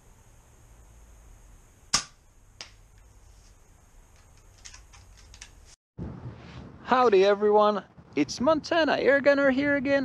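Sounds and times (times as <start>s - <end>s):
sharp snaps: 1.9s - 3.0s.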